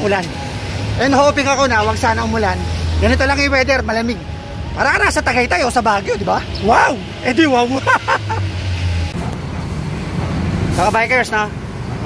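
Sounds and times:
rumble of passing traffic: 0.0s - 12.0s.

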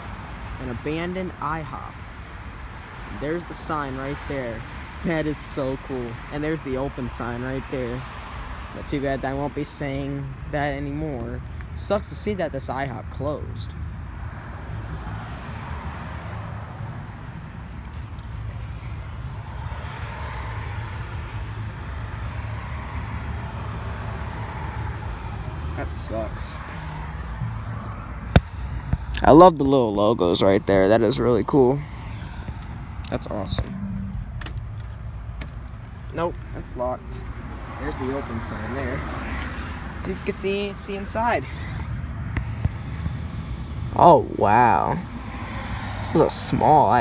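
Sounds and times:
road traffic rumble: 0.0s - 47.0s
vehicle passing: 0.0s - 47.0s
steady low rumble: 25.0s - 37.6s.

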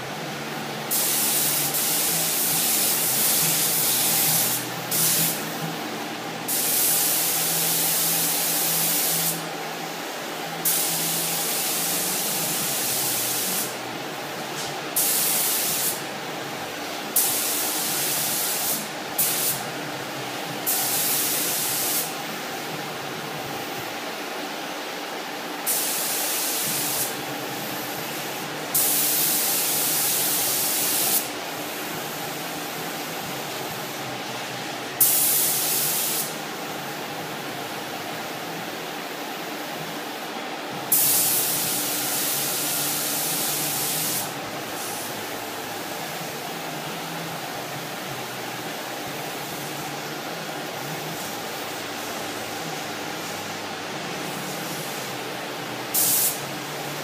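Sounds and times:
spray gun hissing: 0.9s - 5.7s, 6.5s - 16.1s, 16.9s - 19.8s, 20.6s - 22.8s, 25.6s - 34.0s, 35.0s - 36.8s, 40.9s - 47.0s, 47.9s - 55.2s, 55.8s - 57.0s.

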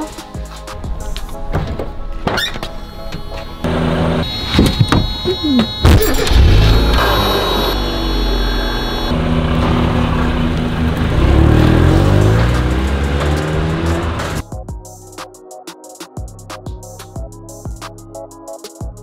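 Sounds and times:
music playing: 0.0s - 9.2s, 11.3s - 19.0s
car engine accelerating: 2.8s - 14.4s.

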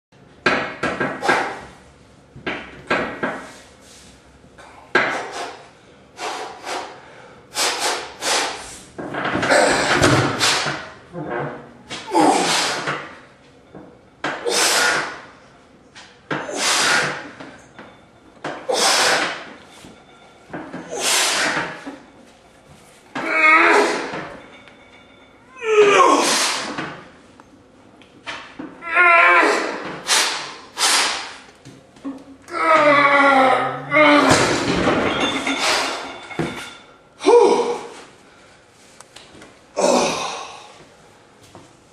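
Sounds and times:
man exhaling forcefully: 12.1s - 12.9s, 30.0s - 31.4s
man grunting: 37.2s - 37.9s, 39.8s - 40.7s.

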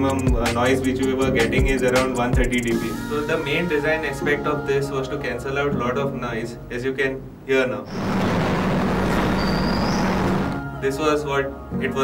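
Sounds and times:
high squeal: 7.9s - 10.7s.

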